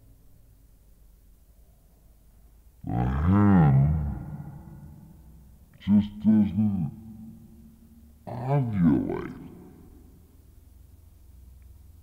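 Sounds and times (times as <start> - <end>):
faint low hum: 0.0 - 12.0
man's drawn-out voice: 2.8 - 5.0, 5.8 - 7.6, 8.2 - 10.0.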